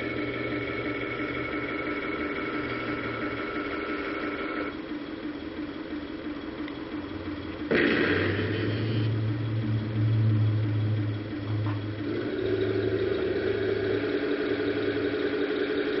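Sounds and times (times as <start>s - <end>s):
model tank engine-like hum: 0.0s - 16.0s.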